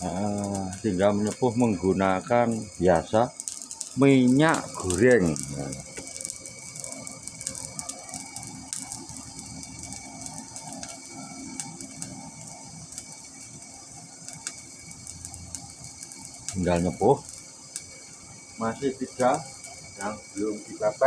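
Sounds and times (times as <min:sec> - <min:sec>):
faint steady hum: 0:00.0 - 0:21.0
forge fire crackling and popping: 0:00.0 - 0:21.0.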